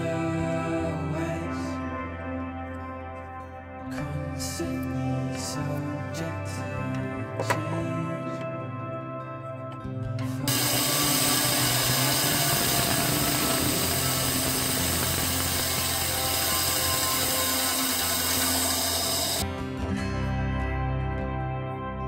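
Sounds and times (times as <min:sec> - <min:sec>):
band saw cutting wood: 0:10.5 - 0:19.4.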